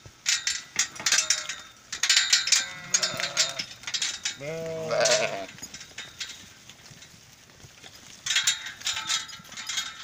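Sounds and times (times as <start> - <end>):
metal gate clanking: 0.2 - 6.4, 8.3 - 10.0
sheep bleating: 2.5 - 3.7, 4.4 - 5.5.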